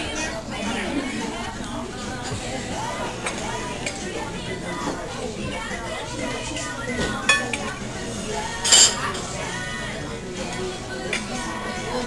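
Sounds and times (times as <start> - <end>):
murmur of voices: 0.0 - 12.0
tableware clinking: 7.0 - 7.7, 8.6 - 9.3.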